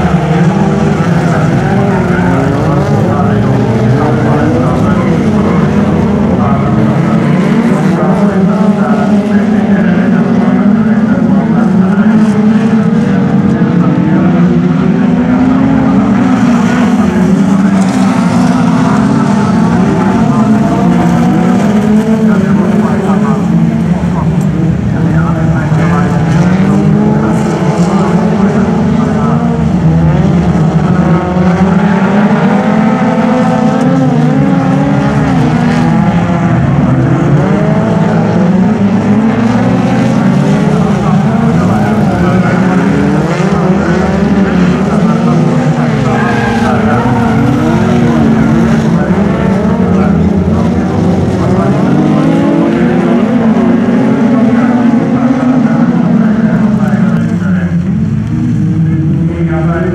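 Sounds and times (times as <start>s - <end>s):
racing car engines revving: 0.0s - 59.9s.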